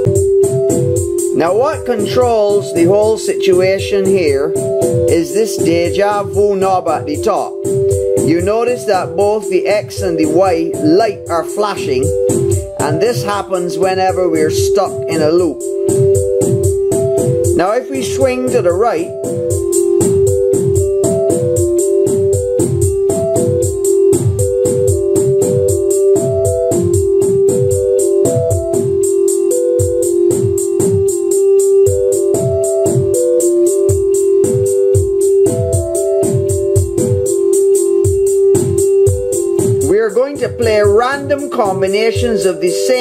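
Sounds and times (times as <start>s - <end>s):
steady held synth tone: 0.0s - 43.0s.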